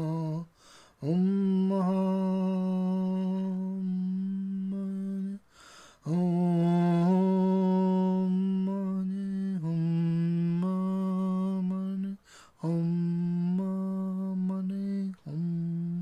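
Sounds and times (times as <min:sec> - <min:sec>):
voice chanting low om: 0:00.0 - 0:05.4, 0:06.0 - 0:16.0
quick breath: 0:00.5 - 0:01.0, 0:05.4 - 0:06.1, 0:12.2 - 0:12.6.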